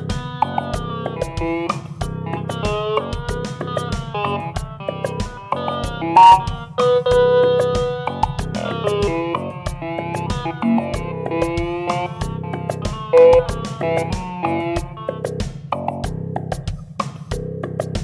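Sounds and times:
drum machine beat: 0.0s - 18.0s
synthesizer notes: 0.4s - 15.3s.

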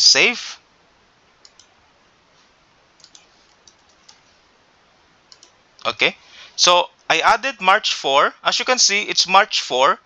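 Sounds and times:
faint keyboard typing: 1.4s - 1.8s, 3.0s - 4.4s, 5.2s - 6.0s.

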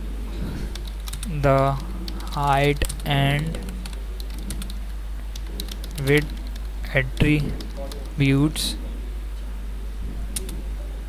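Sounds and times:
computer keyboard typing: 0.7s - 8.2s.

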